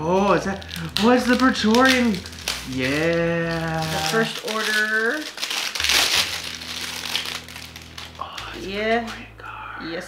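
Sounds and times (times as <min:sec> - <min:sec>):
plastic wrap crinkling: 0:00.0 - 0:09.3.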